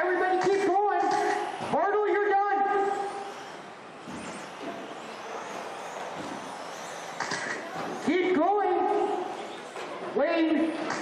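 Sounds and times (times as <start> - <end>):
high motor whine: 0.0 - 11.0
hiss of motors and tyres: 2.8 - 8.1.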